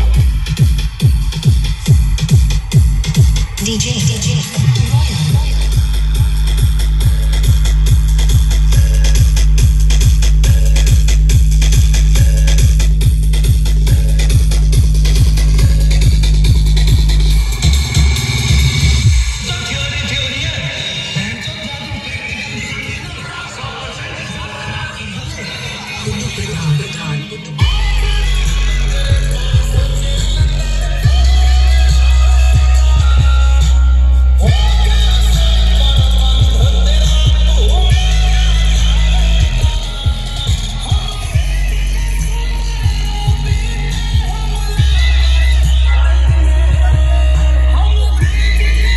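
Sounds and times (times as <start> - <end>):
deep bass kick beat: 0.0 - 19.4, 27.6 - 48.9
electronic dance music: 0.0 - 48.9.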